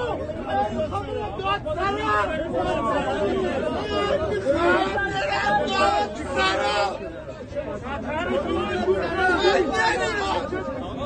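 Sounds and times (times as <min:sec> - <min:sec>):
men talking and shouting: 0:00.0 - 0:11.0.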